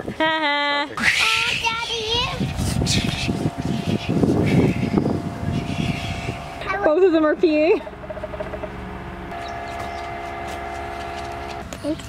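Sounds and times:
horn sounding a chord: 3.4s - 11.7s.

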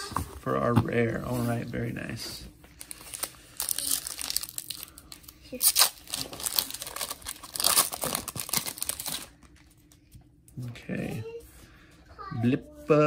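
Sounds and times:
foil wrapper tearing and crinkling: 2.8s - 9.6s.

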